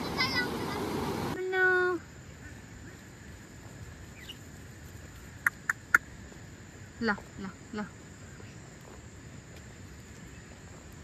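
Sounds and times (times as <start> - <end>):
rushing river water: 0.0 - 1.4
faint bird chirp: 4.1 - 4.5.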